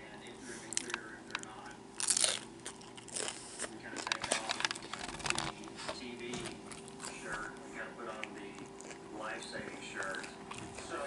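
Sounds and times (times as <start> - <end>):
crunching a crisp taco: 0.7 - 5.9.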